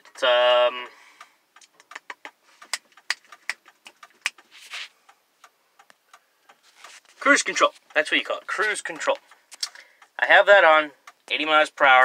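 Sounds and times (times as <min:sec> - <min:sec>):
light sharp ticking: 0:01.2 - 0:10.2
short rustle: 0:04.4 - 0:05.0, 0:06.6 - 0:07.9.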